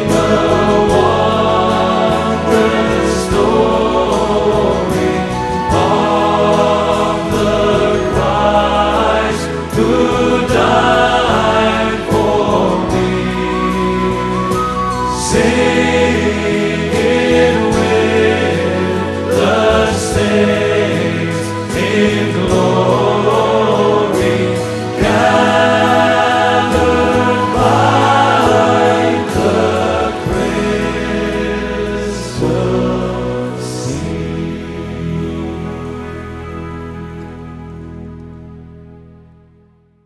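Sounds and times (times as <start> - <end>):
group singing a hymn: 0.0 - 36.0
instrumental accompaniment: 0.0 - 40.0.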